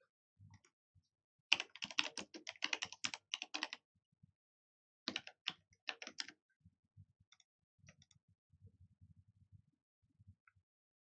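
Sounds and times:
typing on computer keyboard: 1.5s - 3.8s, 5.1s - 6.3s.

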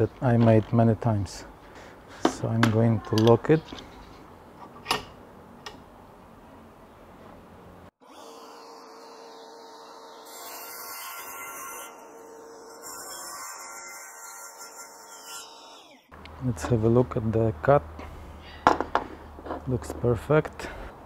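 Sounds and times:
table saw cutting metal: 8.0s - 16.1s.

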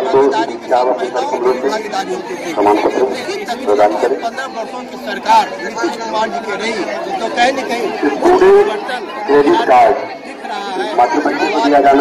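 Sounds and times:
chatter of voices: 0.0s - 12.0s
man talking: 0.0s - 12.0s.

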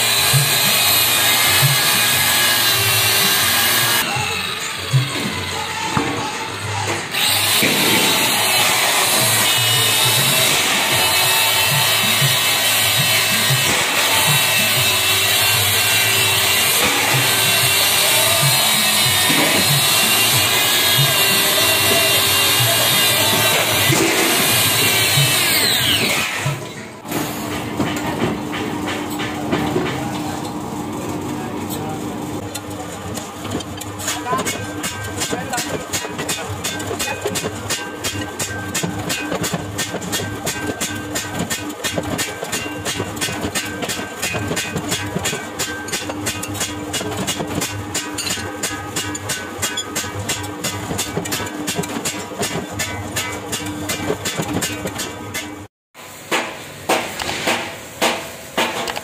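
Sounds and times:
angle grinder sanding metal: 0.0s - 5.9s, 7.0s - 26.6s
power hammer striking steel: 0.0s - 30.1s, 33.5s - 55.7s, 56.3s - 59.0s
steady machine hum: 0.0s - 58.8s.

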